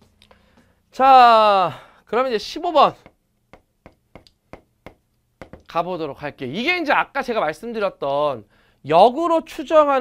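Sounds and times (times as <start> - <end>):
chalk tapping on blackboard: 2.9 - 5.7.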